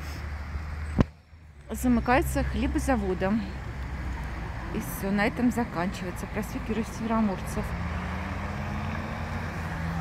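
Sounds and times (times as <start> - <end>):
vehicles driving past: 0.0 - 10.0.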